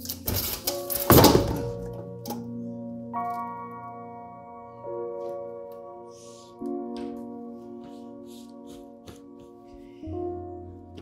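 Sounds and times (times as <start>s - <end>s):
background music of held notes: 0.0s - 11.0s
body falling against bar stool: 0.4s - 1.9s.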